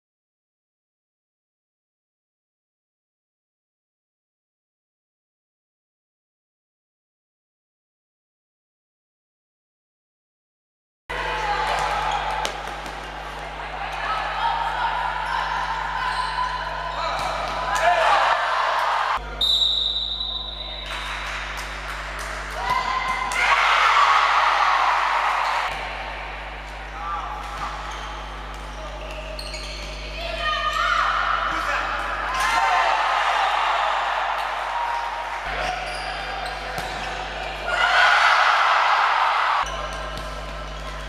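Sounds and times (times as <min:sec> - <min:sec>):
people shouting in sports hall: 0:11.1 - 0:19.4, 0:20.2 - 0:41.0
ball bouncing on court: 0:11.6 - 0:13.6, 0:15.7 - 0:18.0, 0:21.5 - 0:23.4, 0:26.6 - 0:30.1, 0:34.4 - 0:37.5, 0:39.6 - 0:41.0
referee's whistle: 0:19.3 - 0:21.0.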